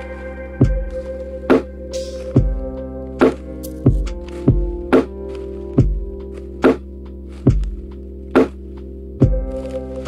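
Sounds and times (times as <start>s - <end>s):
soft sustained chords: 0.0s - 10.0s
kick and snare drum beat: 2.4s - 2.7s, 3.9s - 5.1s, 5.8s - 6.8s, 9.2s - 9.5s.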